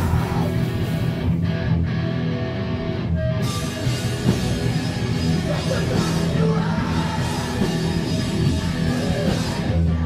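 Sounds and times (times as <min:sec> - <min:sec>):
electric guitar: 0:00.0 - 0:10.0
live rock band playing: 0:00.0 - 0:10.0.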